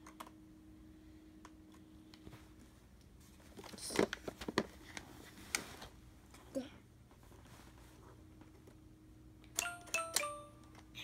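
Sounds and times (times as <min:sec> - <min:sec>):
toy button click: 0:09.6 - 0:10.8.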